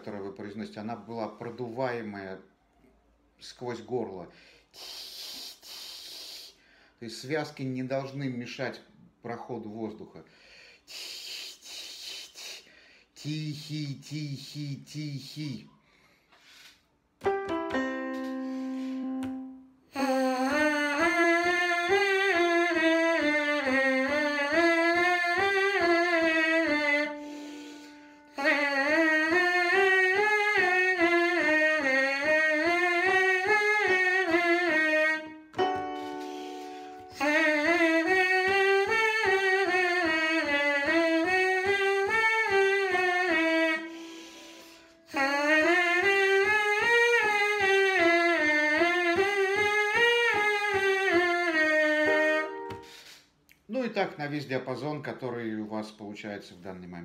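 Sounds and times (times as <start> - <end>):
trumpet mouthpiece buzzing notes: 17.3 - 53.0.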